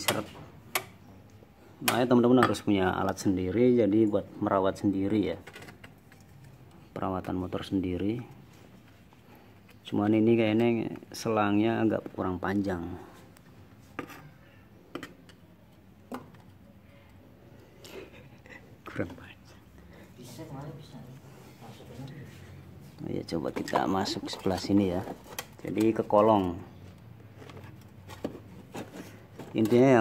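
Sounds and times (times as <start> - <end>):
faint background noise: 0.0 - 30.0.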